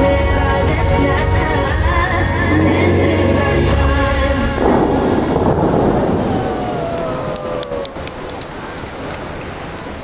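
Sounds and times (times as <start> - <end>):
fountain water jets rushing: 2.6 - 10.0.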